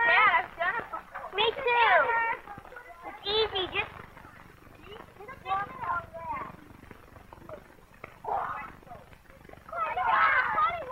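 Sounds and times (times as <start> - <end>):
children calling out: 7.5 - 9.0, 9.7 - 10.9.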